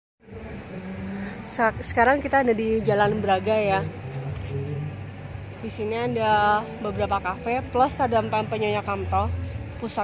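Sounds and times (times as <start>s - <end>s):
street traffic hum: 0.2s - 10.0s.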